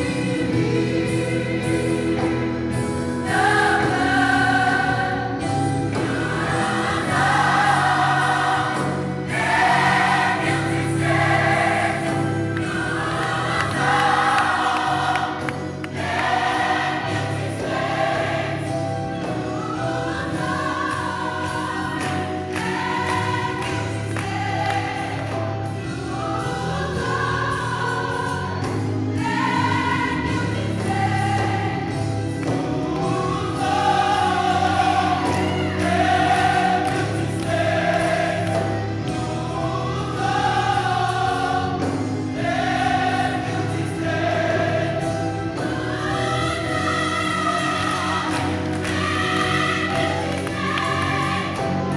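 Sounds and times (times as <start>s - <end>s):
gospel choir singing: 0.0s - 51.9s
steady bass accompaniment: 0.0s - 51.9s.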